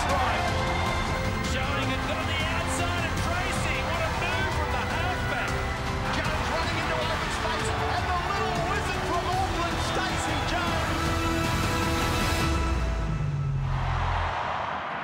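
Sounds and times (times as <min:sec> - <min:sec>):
commentator talking: 0:00.0 - 0:11.2
background music: 0:00.0 - 0:14.9.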